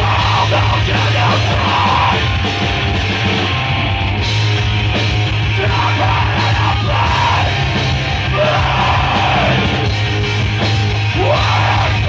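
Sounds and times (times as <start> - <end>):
singer screaming: 0.0 - 4.0, 5.3 - 9.9, 10.9 - 12.0
bass guitar: 0.0 - 12.0
distorted electric guitars: 0.0 - 12.0
drums: 0.0 - 12.0.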